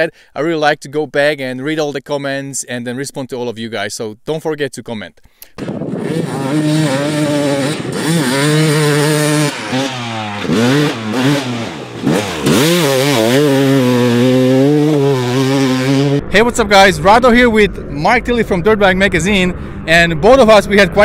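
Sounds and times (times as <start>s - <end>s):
dirt bike engine revving: 5.6s - 16.3s.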